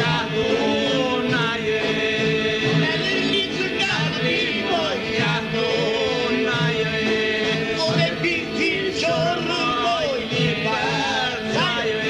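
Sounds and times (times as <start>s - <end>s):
male voices polyphonic folk singing: 0.0s - 12.0s.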